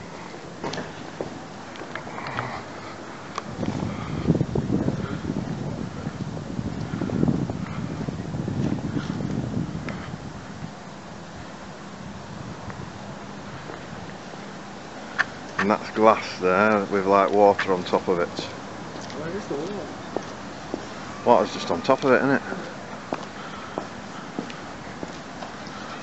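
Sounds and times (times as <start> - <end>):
wind buffeting microphone: 2.6 - 26.0.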